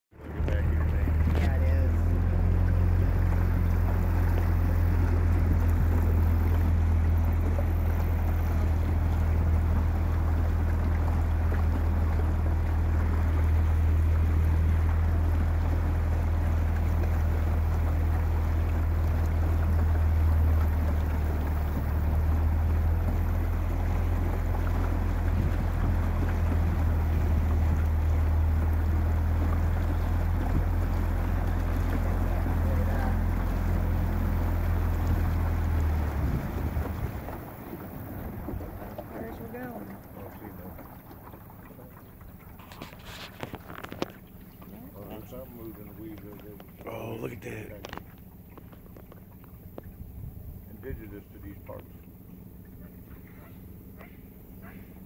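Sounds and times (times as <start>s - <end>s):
wind: 0.0s - 55.0s
boat motor humming: 0.1s - 55.0s
water rushing: 0.1s - 55.0s.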